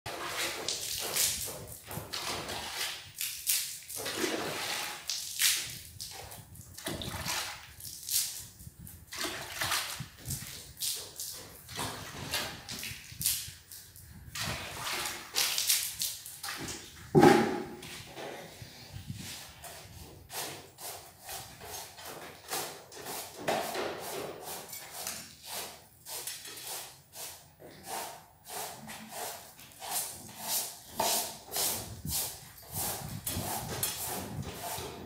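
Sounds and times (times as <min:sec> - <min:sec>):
water splashing on concrete: 0:00.1 - 0:17.8
thump: 0:17.2 - 0:17.8.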